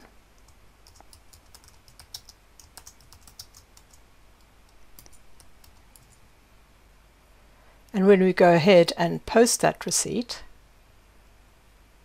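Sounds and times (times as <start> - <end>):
typing on computer keyboard: 0.4 - 6.2.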